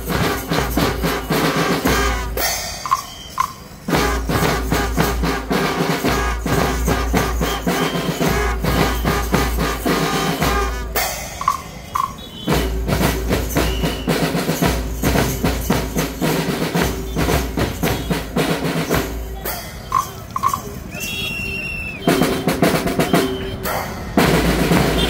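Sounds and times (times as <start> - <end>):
drum band marching beat: 0.0 - 25.0.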